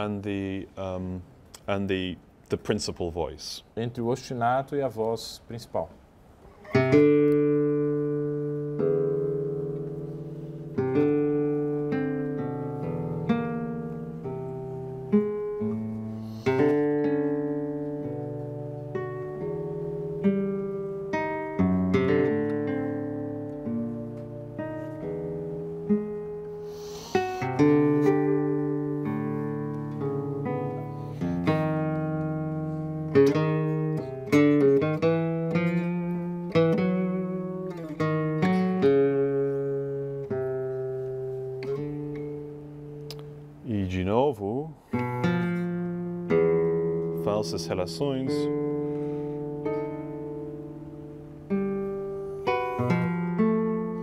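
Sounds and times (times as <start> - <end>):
classical guitar playing: 6.4 - 54.0.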